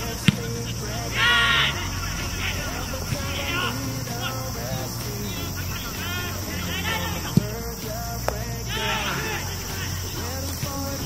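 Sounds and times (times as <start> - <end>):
faint voices: 0.0 - 11.0
loud harsh call: 0.0 - 11.0.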